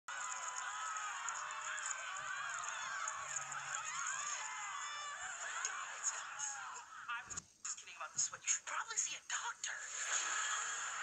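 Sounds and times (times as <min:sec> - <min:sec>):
people shrieking and whooping: 0:00.1 - 0:07.1.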